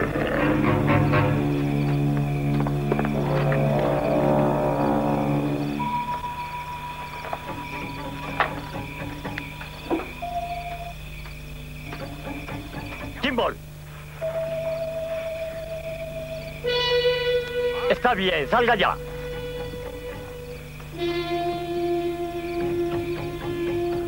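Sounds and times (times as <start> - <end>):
night insects chirping: 0.0 - 24.0
suspenseful film score: 0.0 - 24.0.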